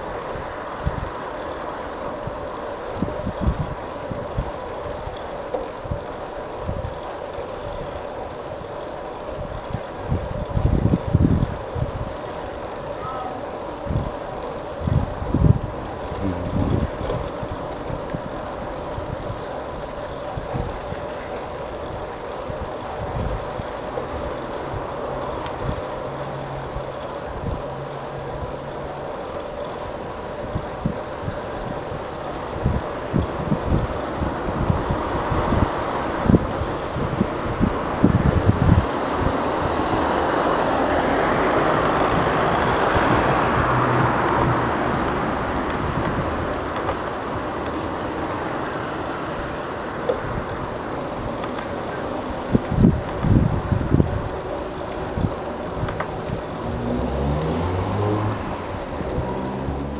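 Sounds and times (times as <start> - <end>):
bicycle rolling rumble: 0.0 - 59.9.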